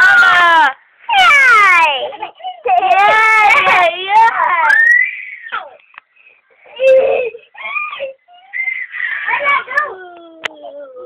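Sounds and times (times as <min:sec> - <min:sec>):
baby crying: 0:06.7 - 0:11.0.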